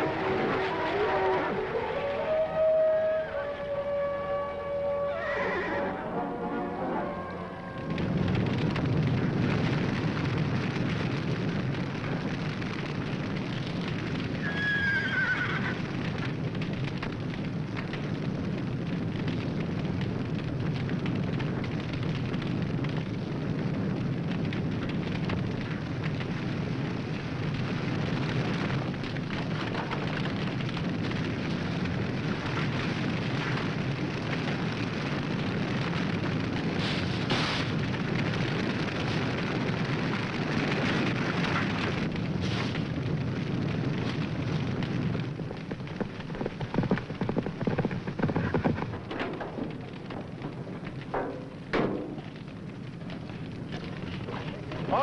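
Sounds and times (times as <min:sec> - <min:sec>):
steady low rumbling: 0:00.0 - 0:14.4, 0:15.8 - 0:55.0
horse whinnying: 0:05.1 - 0:06.0, 0:14.4 - 0:15.8.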